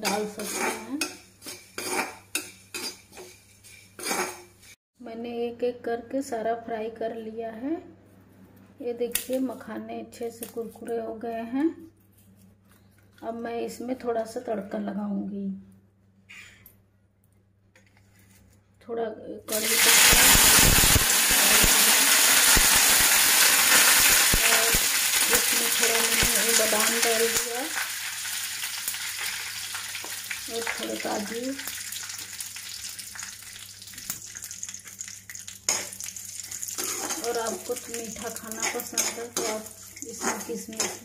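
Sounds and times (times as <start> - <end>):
nuts sizzling in hot oil: 19.5 - 41.0
woman speaking: 24.4 - 27.8, 30.5 - 31.6, 37.0 - 41.0.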